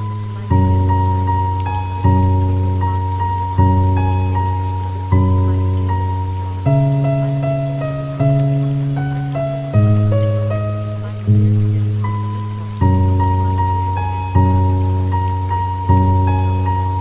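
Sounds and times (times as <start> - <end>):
rain hissing: 0.0 - 17.0
slow soft background music: 0.0 - 17.0.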